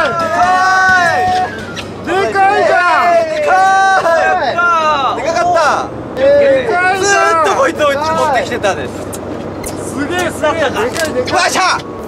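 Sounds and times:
excited voice: 0:00.0 - 0:08.4.

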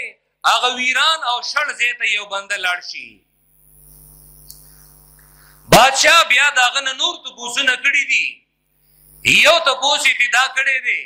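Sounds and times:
low electrical hum: 0:00.0 - 0:11.0
faint high hiss: 0:03.2 - 0:10.6
small click: 0:04.4 - 0:05.3.

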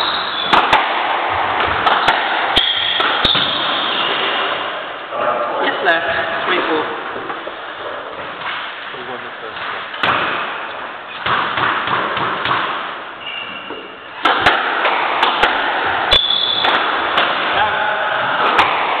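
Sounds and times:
squash ball cracking off rackets: 0:00.4 - 0:04.3, 0:14.2 - 0:17.6
shoes squeaking on wooden floor: 0:13.2 - 0:14.2.

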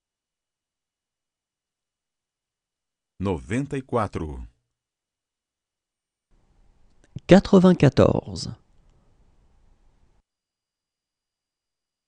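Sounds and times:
person speaking: 0:03.2 - 0:04.6.

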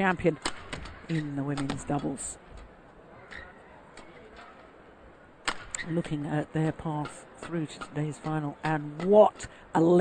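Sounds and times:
indoor sports hall noise: 0:00.0 - 0:10.0.

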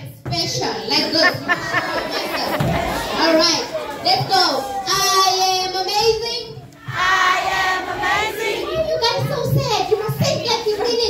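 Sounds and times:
children singing: 0:06.8 - 0:08.9.

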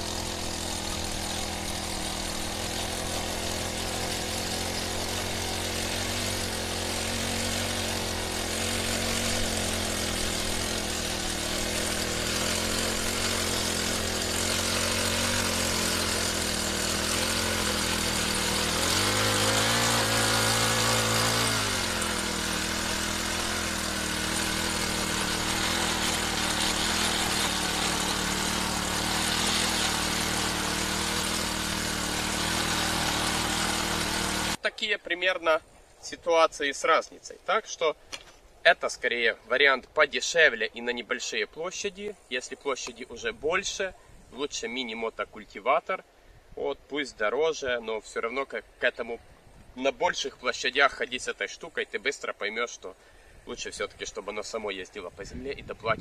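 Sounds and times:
small petrol engine running: 0:00.0 - 0:34.6.

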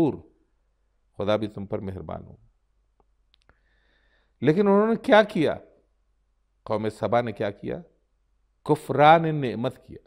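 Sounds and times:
man speaking: 0:00.0 - 0:00.3, 0:01.2 - 0:02.5, 0:04.4 - 0:05.8, 0:06.6 - 0:08.0, 0:08.6 - 0:10.0.

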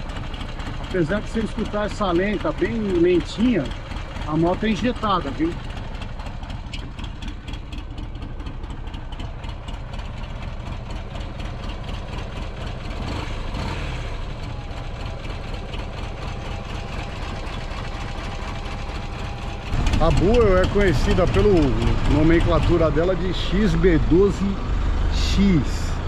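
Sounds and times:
motorcycle engine idling slowly: 0:00.0 - 0:26.0.

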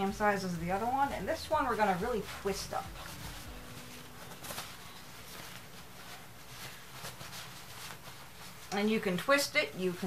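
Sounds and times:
stiff cloth rustling and crinkling: 0:00.0 - 0:10.0.

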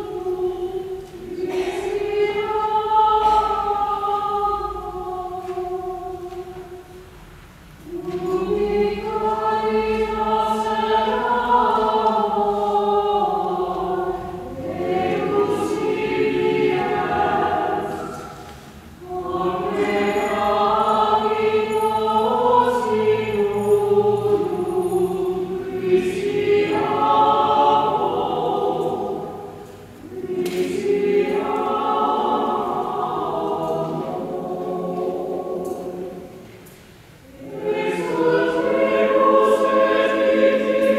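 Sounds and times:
choir singing a hymn: 0:00.0 - 0:40.9
choir breaths: 0:00.1 - 0:40.9.

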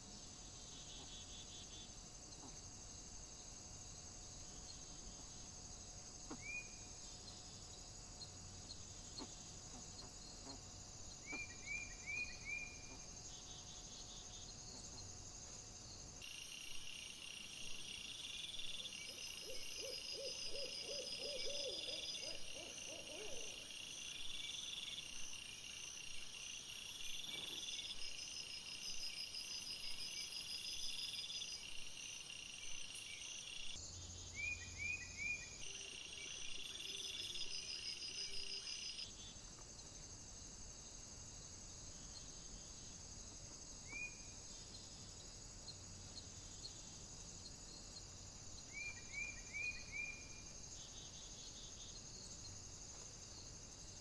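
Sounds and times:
insects chirring: 0:00.0 - 0:54.0
low hoot-like calls: 0:19.4 - 0:23.6.

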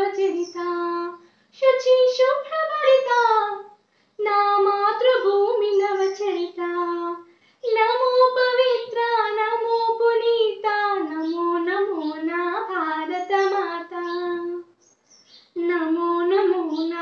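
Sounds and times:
girl singing unaccompanied: 0:00.0 - 0:14.8, 0:15.5 - 0:17.0.

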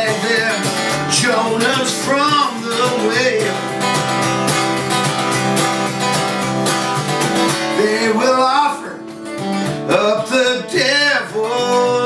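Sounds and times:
person singing: 0:00.0 - 0:04.2, 0:07.5 - 0:12.0
acoustic guitar strumming: 0:00.0 - 0:12.0.

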